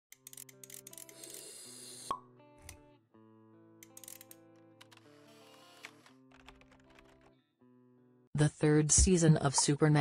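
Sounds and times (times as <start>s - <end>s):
soft music: 0.1s - 10.0s.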